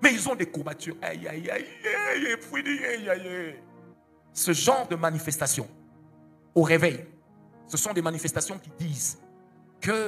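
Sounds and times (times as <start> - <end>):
sustained background chord: 0.0 - 10.0.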